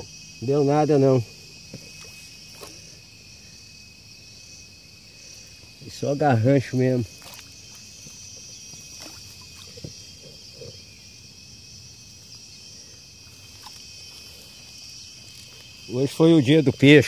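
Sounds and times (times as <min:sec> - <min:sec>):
insects chirring: 0:00.0 - 0:17.0.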